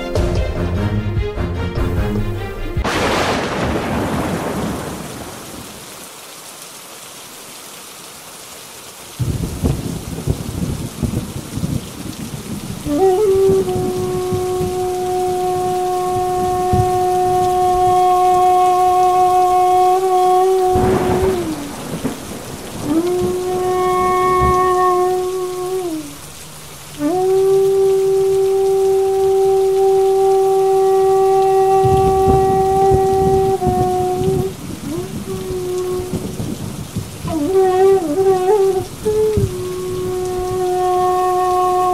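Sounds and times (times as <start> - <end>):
heavy rain pouring: 1.8 - 41.9
thunderclap: 2.8 - 5.8, 9.2 - 26.0, 31.1 - 40.6
low rolling thunder: 2.8 - 5.9, 9.2 - 26.4, 27.0 - 41.9.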